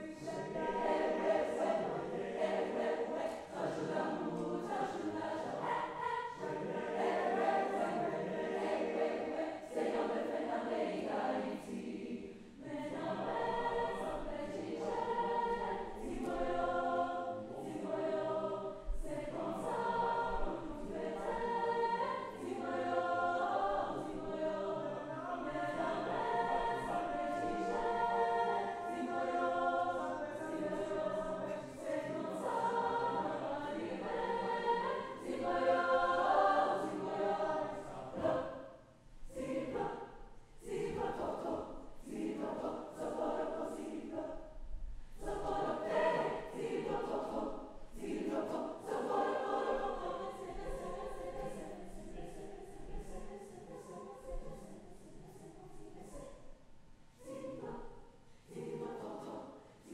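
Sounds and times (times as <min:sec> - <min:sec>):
mixed choir singing in harmony: 0:00.0 - 0:59.9.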